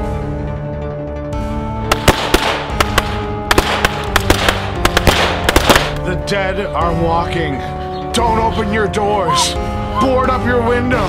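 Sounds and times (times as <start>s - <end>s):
volley of gunshots: 1.9s - 6.0s.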